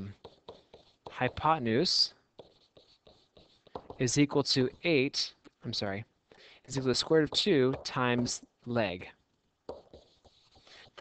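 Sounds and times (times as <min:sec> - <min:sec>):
stylus scratching on writing surface: 0:00.0 - 0:05.0, 0:06.7 - 0:08.3, 0:09.7 - 0:11.0.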